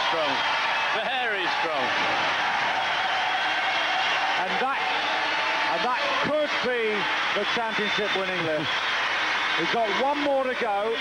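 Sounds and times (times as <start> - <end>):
crowd cheering: 0.0 - 11.0.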